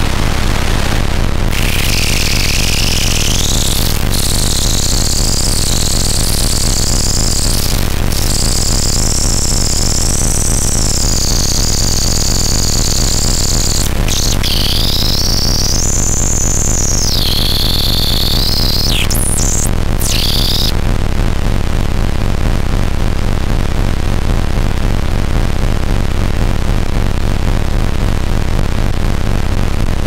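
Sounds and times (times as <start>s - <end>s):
dense electronic hiss: 0.0s - 20.8s
steady low hum: 0.0s - 20.8s
high sliding whistling tone: 1.5s - 20.7s.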